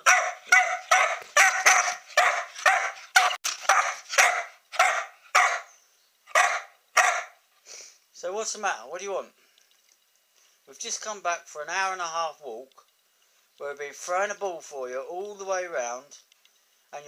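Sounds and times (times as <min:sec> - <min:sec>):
young dog barking: 0:00.0 - 0:05.7, 0:06.3 - 0:07.4.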